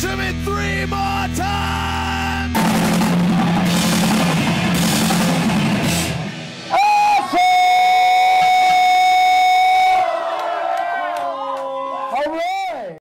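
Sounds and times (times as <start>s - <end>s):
drum and cymbal hits: 2.4s - 9.8s
people shouting: 6.6s - 12.2s.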